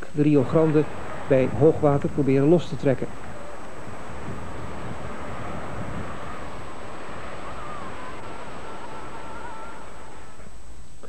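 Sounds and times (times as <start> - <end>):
sea surf: 0.0 - 10.8
faint wavering tones: 0.0 - 11.0
steady wind: 0.0 - 11.0.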